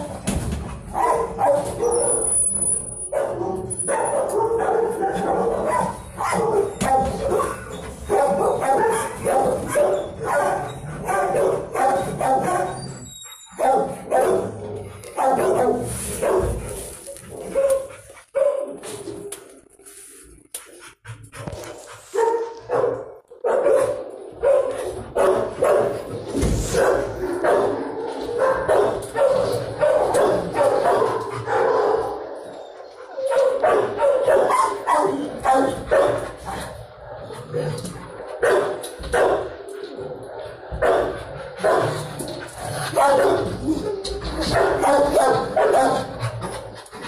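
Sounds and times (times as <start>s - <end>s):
dogs barking: 0.8s - 19.5s, 21.4s - 46.8s.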